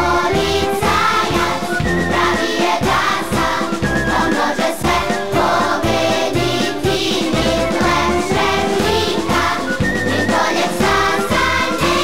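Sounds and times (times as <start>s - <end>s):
children's choir singing: 0.0s - 12.0s
instrumental backing: 0.0s - 12.0s
steady drum beat: 0.0s - 12.0s.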